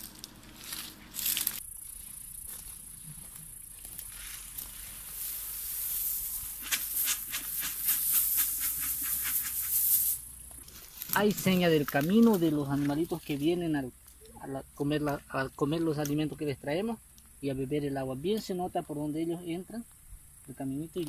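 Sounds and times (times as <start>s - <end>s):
dry leaves rustling and crackling: 0.0s - 14.2s
steady high hiss: 0.0s - 21.0s.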